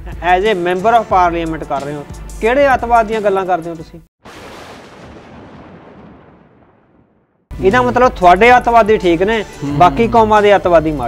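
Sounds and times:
explosion hiss and rumble: 4.3s - 7.2s.

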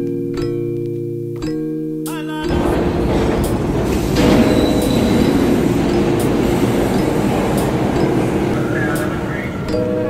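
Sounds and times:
city traffic rumble: 2.5s - 10.0s
faint high squeal: 4.2s - 6.3s.

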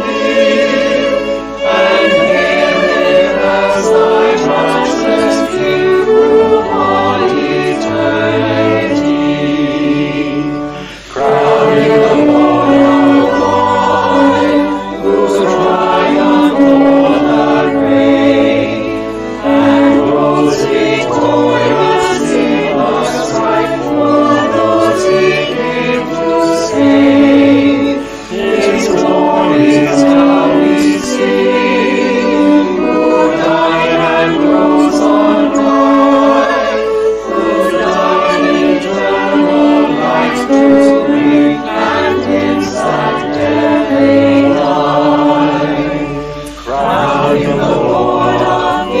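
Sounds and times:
choir singing a hymn: 0.0s - 49.0s
instrumental accompaniment: 0.0s - 49.0s.

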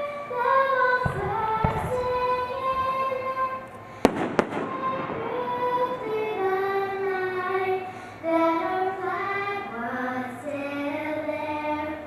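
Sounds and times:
girl singing into a microphone: 0.0s - 3.8s, 4.4s - 12.0s
sharp pops: 1.0s - 5.6s.

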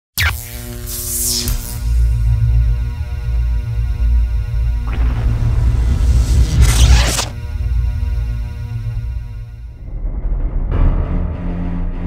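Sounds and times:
deep pulsing bass drone: 0.4s - 12.0s
sudden hit with falling sweep: 4.8s - 8.0s.

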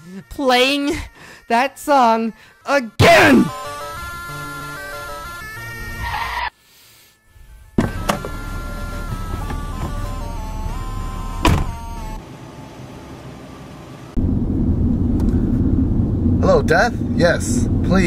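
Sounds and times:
low car rumble: 7.8s - 18.0s.

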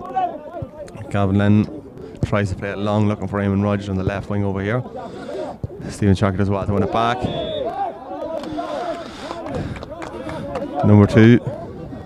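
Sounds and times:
voices calling and shouting: 2.8s - 12.0s.

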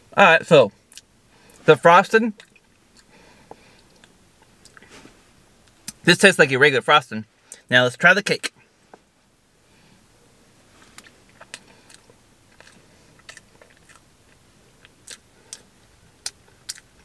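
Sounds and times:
person chewing: 0.9s - 1.6s, 2.4s - 4.9s, 10.8s - 17.0s.

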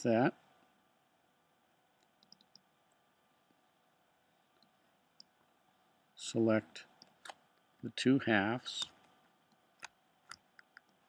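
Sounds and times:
computer mouse clicks: 2.0s - 2.7s, 9.5s - 11.0s.

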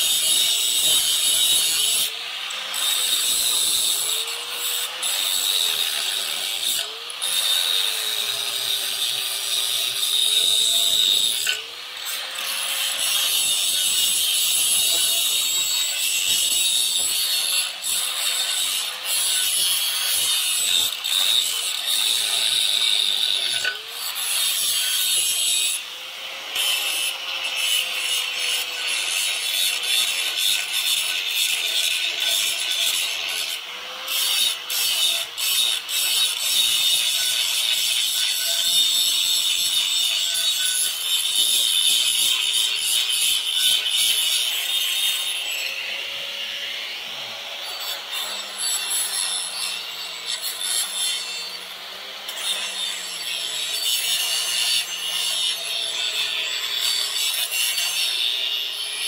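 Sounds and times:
angle grinder grinding metal: 0.0s - 59.0s.

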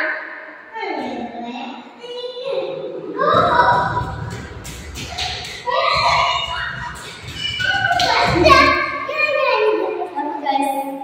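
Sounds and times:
girls squealing and singing: 3.2s - 4.2s, 5.1s - 9.4s.

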